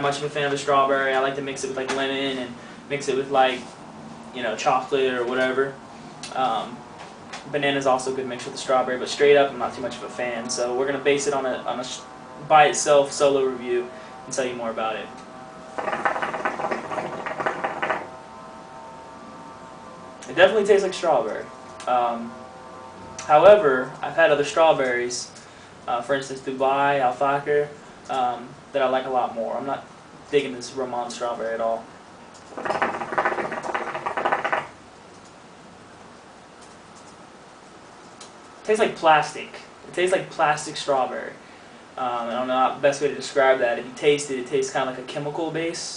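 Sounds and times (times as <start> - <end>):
hookah water bubbling: 15.8 - 18.2, 32.5 - 34.7.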